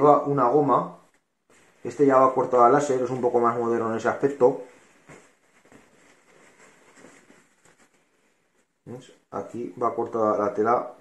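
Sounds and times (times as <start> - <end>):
fabric rustling: 1.0 - 8.9.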